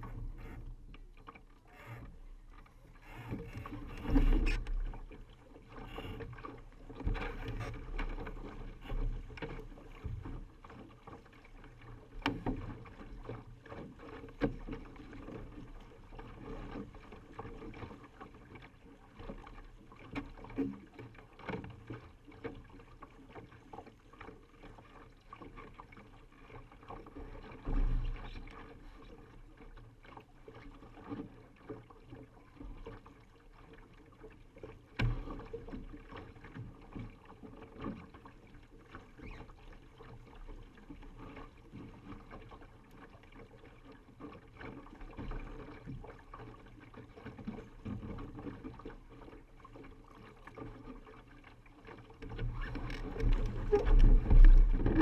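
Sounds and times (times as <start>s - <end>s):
water slapping against hull: 0.0s - 55.0s.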